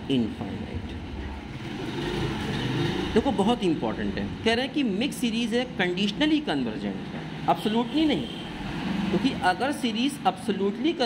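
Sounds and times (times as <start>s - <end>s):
motor vehicle passing: 1.2s - 4.4s, 8.5s - 9.9s.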